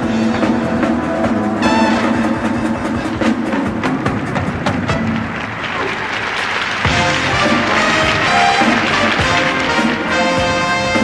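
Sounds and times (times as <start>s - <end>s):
circus band music: 0.0s - 11.0s
audience applauding: 3.8s - 11.0s.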